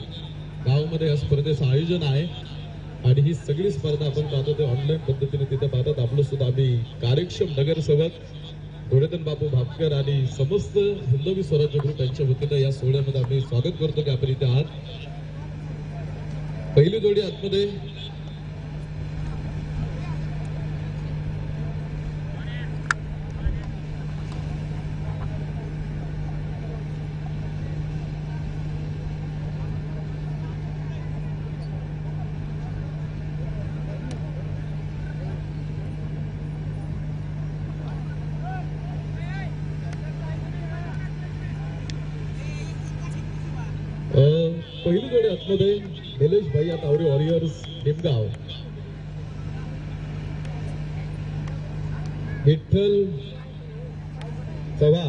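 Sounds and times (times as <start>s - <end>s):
faint distant voices: 0.0s - 55.0s
steady low hum: 0.0s - 55.0s.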